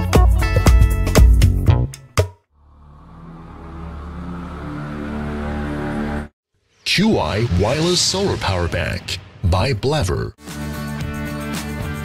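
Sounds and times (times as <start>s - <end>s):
low droning transition effect: 2.6s - 9.4s.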